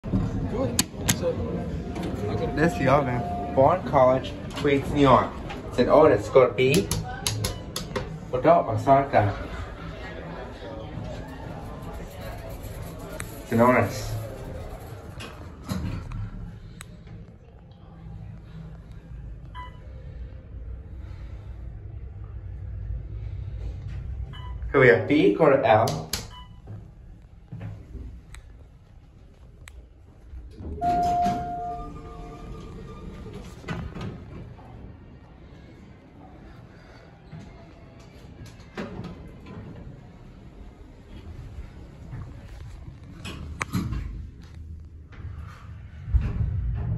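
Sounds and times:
elevator hum: 0.0 - 17.2, 18.0 - 46.9
elevator arrival chime: 1.9 - 5.0, 30.8 - 33.6.

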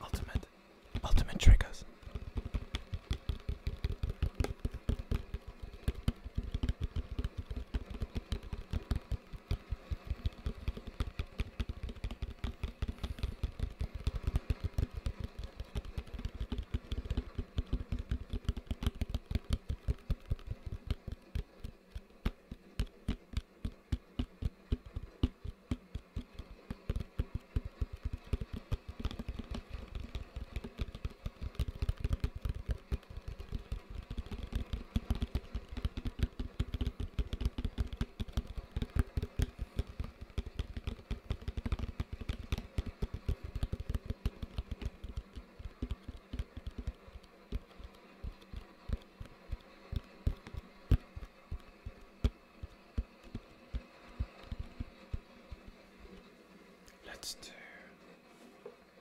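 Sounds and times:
fingers tapping plastic bucket: 2.1 - 55.7.

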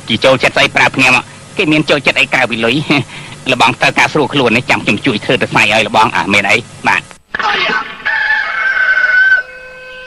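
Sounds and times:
rooster crowing: 8.0 - 10.0.

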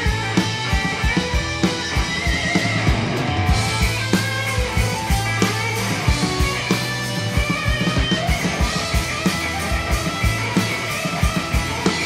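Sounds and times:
bass guitar: 0.0 - 12.0
distorted electric guitars: 0.0 - 12.0
steady kick drum beat: 0.0 - 12.0.

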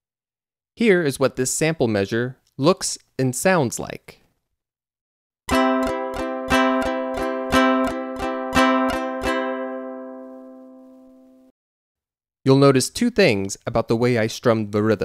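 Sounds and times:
ukulele strumming: 5.5 - 11.4.

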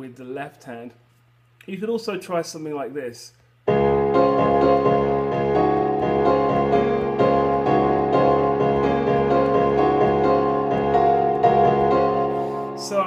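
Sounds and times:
held low piano notes: 3.7 - 13.0
piano-like melody notes: 3.7 - 13.0.

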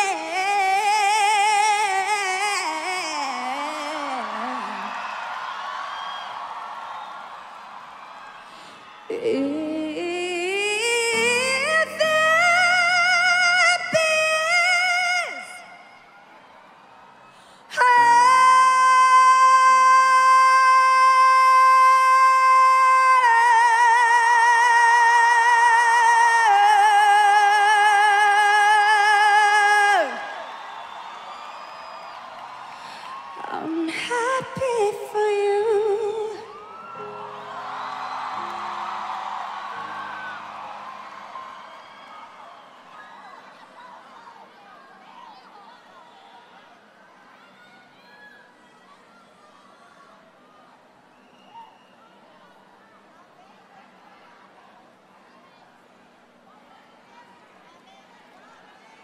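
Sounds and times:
woman singing with vibrato: 0.0 - 5.0, 9.1 - 16.0, 17.6 - 30.4, 32.8 - 37.0
crowd cheering: 0.0 - 59.0.

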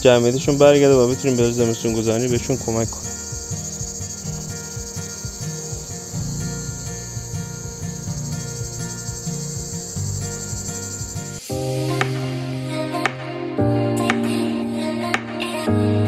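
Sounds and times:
crickets chirring: 0.0 - 13.0
honeybees humming: 0.0 - 13.2.

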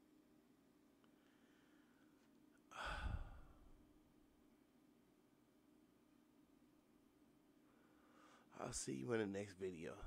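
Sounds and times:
heavy sigh: 2.7 - 3.7.

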